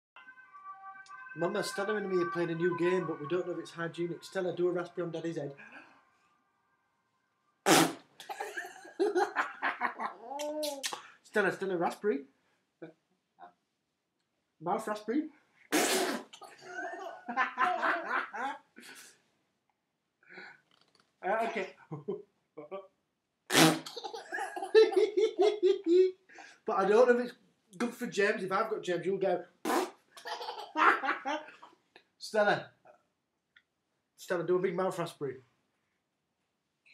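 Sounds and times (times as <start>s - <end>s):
raspberry blown against skin: 7.6s - 8.1s, 15.7s - 16.4s, 23.5s - 24.0s, 29.7s - 30.0s
laughter: 8.4s - 10.2s, 16.6s - 18.6s, 24.2s - 26.1s.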